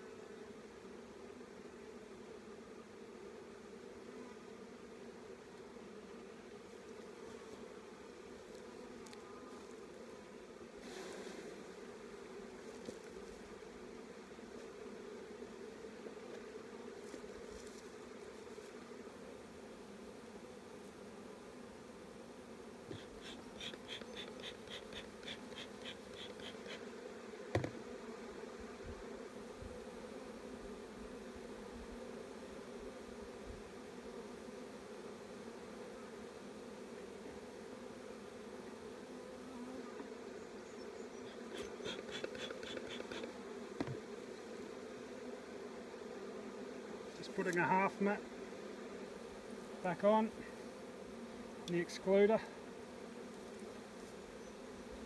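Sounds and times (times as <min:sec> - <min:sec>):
honeybees buzzing: 0:00.0 - 0:55.0
quick high ticks: 0:41.6 - 0:43.3.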